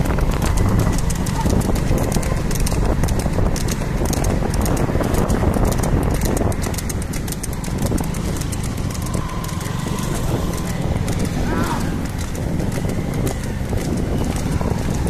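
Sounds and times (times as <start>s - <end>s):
hooves clopping on asphalt: 0.0s - 15.0s
motorcycle running: 0.0s - 15.0s
wind rumble: 0.0s - 15.0s.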